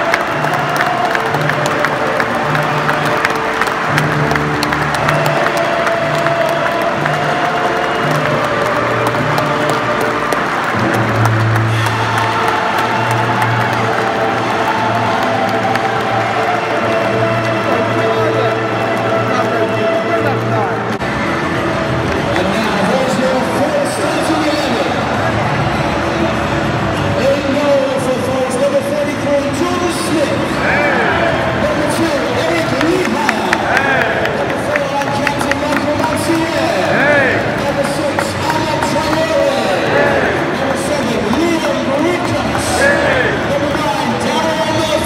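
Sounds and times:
crowd noise and voices: 0.0s - 45.0s
music over public address: 0.0s - 45.0s.

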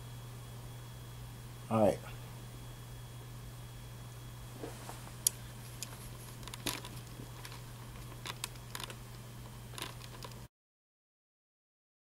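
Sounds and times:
steady low hum: 0.0s - 10.5s.

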